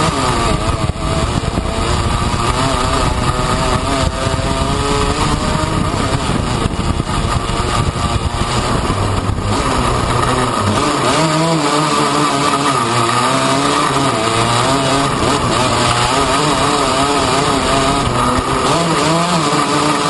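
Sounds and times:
rough rumble of wind and ground: 0.0 - 20.0
small engine revving: 0.0 - 20.0.

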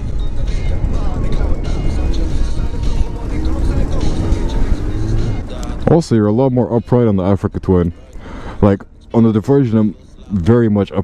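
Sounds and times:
motorcycle engine accelerating: 1.0 - 5.9.

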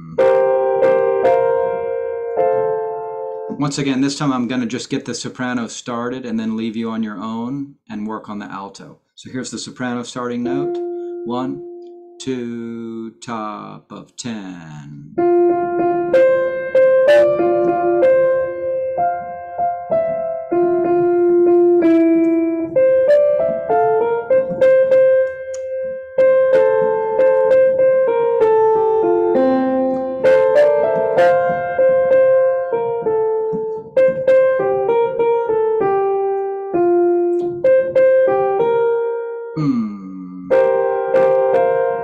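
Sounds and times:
piano playing melody lines: 0.0 - 4.9, 10.1 - 12.9, 15.2 - 42.0.

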